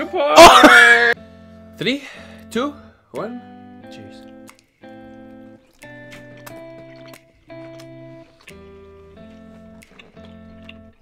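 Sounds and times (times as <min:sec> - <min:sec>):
quiet music with held chords: 0:00.0 - 0:11.0.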